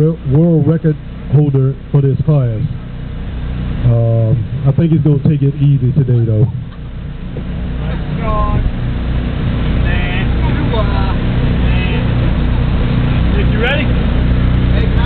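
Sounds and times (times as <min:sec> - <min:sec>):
car engines idling: 0:00.0 - 0:15.0.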